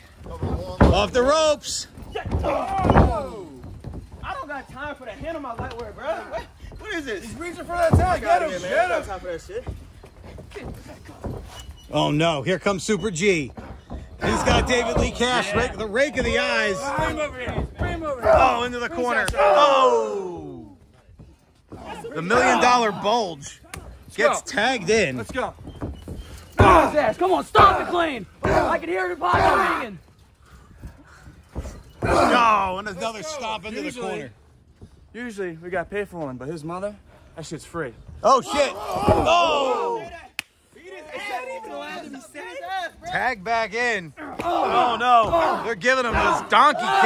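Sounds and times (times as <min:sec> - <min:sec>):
soft thumps: 0:12.8 - 0:19.5
commentary: 0:14.2 - 0:20.6
faint shouted voices: 0:26.6 - 0:30.2, 0:31.0 - 0:34.3, 0:38.3 - 0:43.1, 0:44.1 - 0:47.0.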